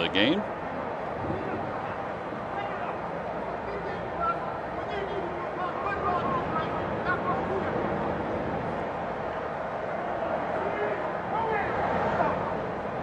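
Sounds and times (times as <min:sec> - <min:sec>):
indistinct crowd voices: 0:00.0 - 0:13.0.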